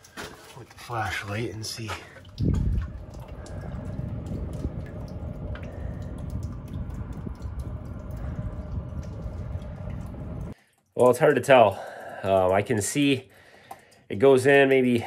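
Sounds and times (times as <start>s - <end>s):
water trickling in metal duct: 0.0s - 15.0s.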